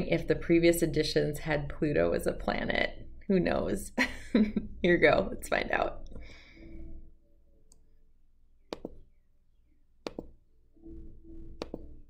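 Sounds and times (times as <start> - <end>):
computer mouse clicks: 8.7 - 9.0, 10.0 - 10.4, 11.6 - 12.0.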